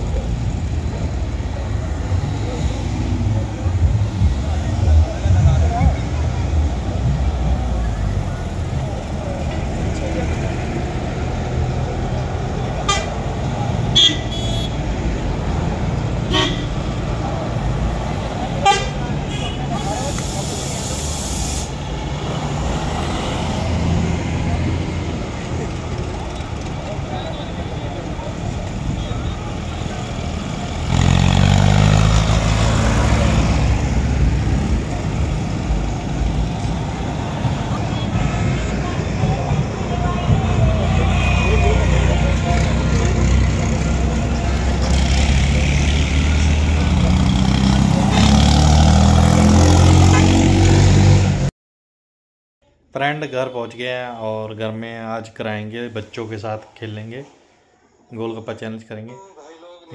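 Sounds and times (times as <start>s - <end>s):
buses and trucks driving past: 0.0s - 51.5s
heavy truck passing loudly: 0.0s - 51.5s
brief air hiss: 19.8s - 21.8s.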